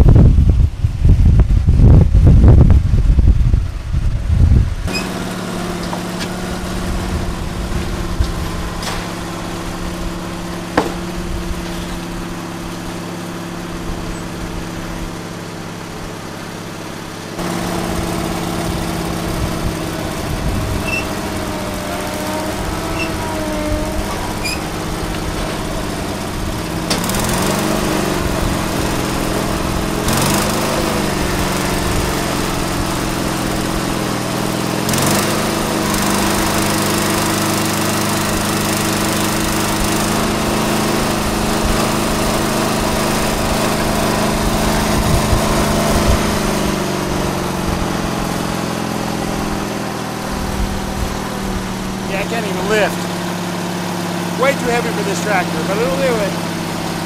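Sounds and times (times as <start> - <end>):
tractor engine running under load: 0.0 - 57.0.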